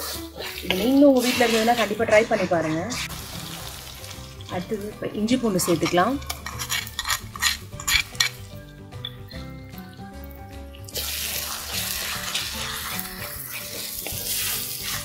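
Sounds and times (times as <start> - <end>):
spoon scraping clay bowl: 0.0 - 3.2, 5.4 - 9.3
background music: 0.0 - 15.0
food sizzling while frying: 0.0 - 15.0.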